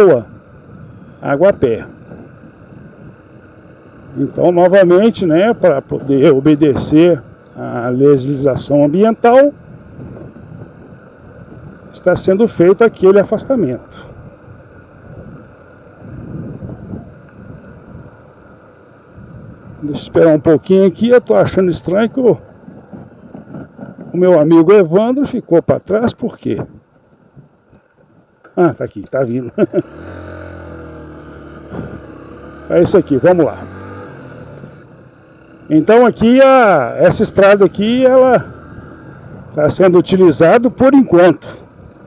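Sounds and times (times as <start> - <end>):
motorcycle engine running: 0.0 - 24.5, 29.4 - 42.0
wind on microphone: 9.6 - 12.0, 14.0 - 18.3, 19.1 - 19.9, 22.3 - 24.3, 38.3 - 39.6.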